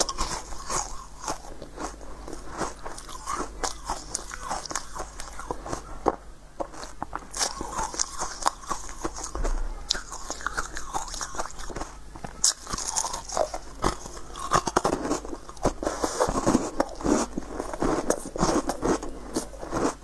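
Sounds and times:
crunching and chewing: 0.0s - 20.0s.

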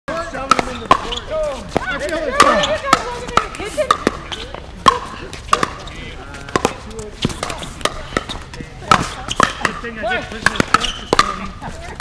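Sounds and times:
paddles hitting pickleball: 0.1s - 12.0s
voices talking: 0.1s - 12.0s.

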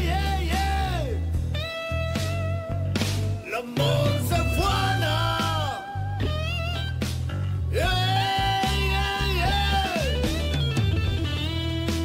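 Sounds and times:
guitar with bending notes: 0.0s - 12.0s
low bass line: 0.0s - 12.0s.

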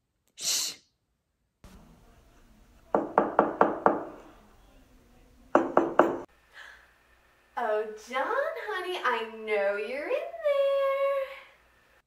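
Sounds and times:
short breathy hiss: 0.4s - 0.9s
knocking on door: 2.9s - 4.2s, 5.5s - 6.3s.

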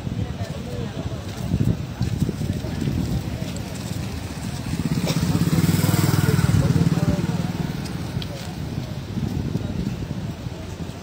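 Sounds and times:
small motorcycle engine passing: 3.8s - 8.2s.

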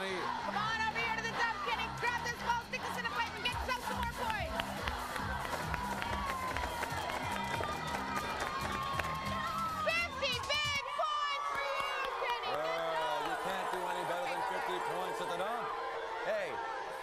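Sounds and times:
game show music: 0.0s - 10.8s
audience shouting and cheering: 0.0s - 17.0s.

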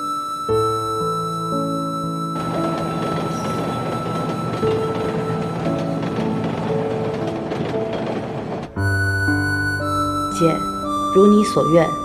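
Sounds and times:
background music: 0.0s - 12.0s
train rumbling on rails: 1.7s - 12.0s.

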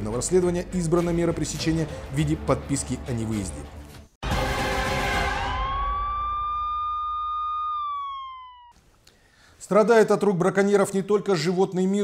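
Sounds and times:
siren-like wail: 4.4s - 8.8s.

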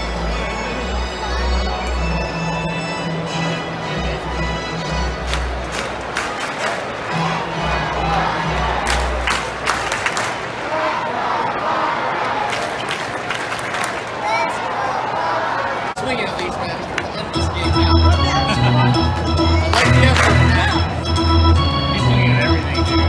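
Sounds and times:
organ playing held bass notes: 0.0s - 6.2s, 7.0s - 9.7s, 17.2s - 23.0s
crowd clapping and cheering: 4.8s - 10.9s, 12.1s - 14.9s, 18.6s - 21.0s.

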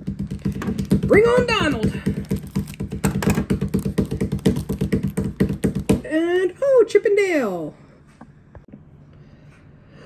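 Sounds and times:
plastic crinkling: 0.2s - 5.8s.

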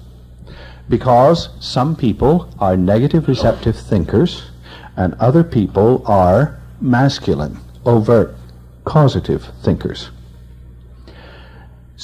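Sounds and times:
steady low hum: 0.0s - 12.0s
soft intake of breath: 0.4s - 0.9s, 4.5s - 5.0s, 11.0s - 11.9s.

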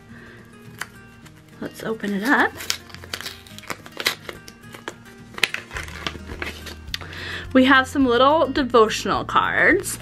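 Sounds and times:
background music: 0.0s - 10.0s
paper pouch rustling and clicking: 0.7s - 7.0s.

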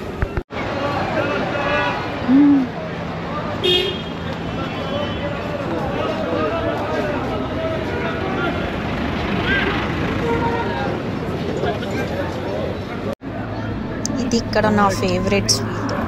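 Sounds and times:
crowd chatter: 0.0s - 16.0s
passing car traffic: 0.0s - 16.0s
car horn toot: 3.6s - 4.2s.

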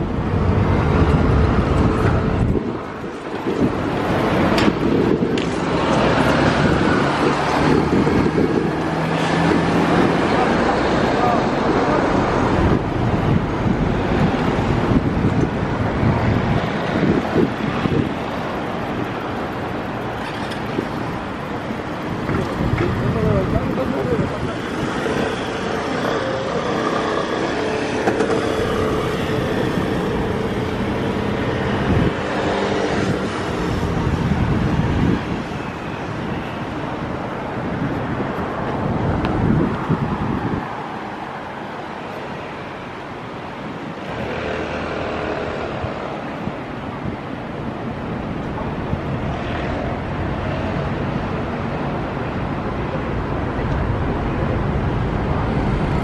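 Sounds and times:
cars and motorbikes passing: 0.0s - 56.0s.

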